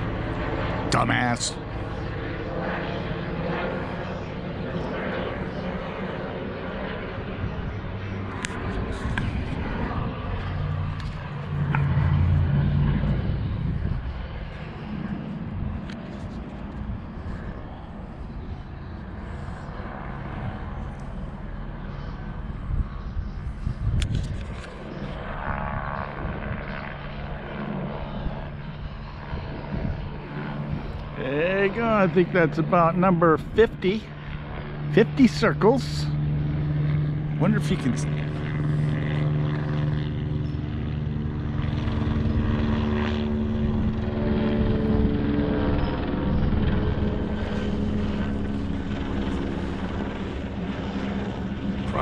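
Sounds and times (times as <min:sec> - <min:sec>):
helicopter rotor drone: 0:00.0 - 0:52.0.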